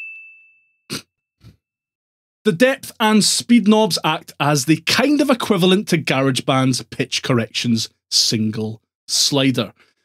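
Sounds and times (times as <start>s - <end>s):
bright bell ding: 0.0s - 0.7s.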